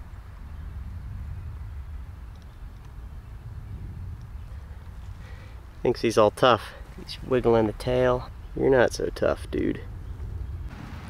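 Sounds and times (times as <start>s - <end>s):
low background rumble: 0.0s - 11.0s
faint ticks: 2.3s - 3.0s.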